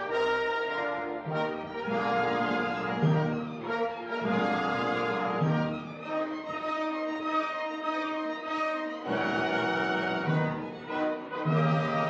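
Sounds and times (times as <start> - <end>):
orchestra brass playing held chords: 0.0 - 12.0.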